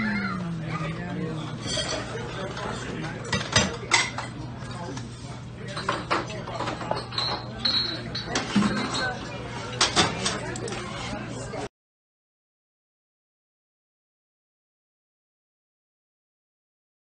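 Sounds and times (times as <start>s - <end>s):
steady low hum: 0.0s - 3.5s
plates and cutlery clinking: 1.4s - 11.2s.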